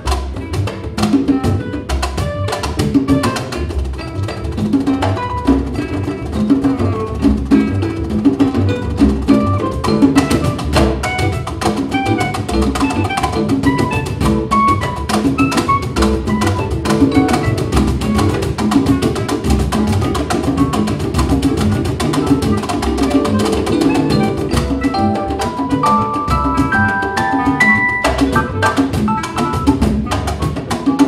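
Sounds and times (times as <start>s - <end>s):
hand percussion and drums: 0.0s - 31.0s
keyboard: 0.0s - 31.0s
upright bass: 0.0s - 31.0s
long held melodic notes: 8.8s - 18.6s, 23.0s - 29.8s
short melodic notes: 23.0s - 29.8s.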